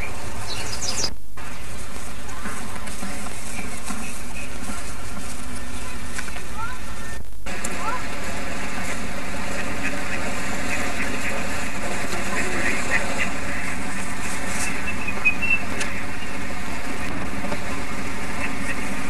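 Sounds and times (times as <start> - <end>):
faint indistinct voices: 0.0 - 19.0
outdoor background noise: 0.0 - 19.0.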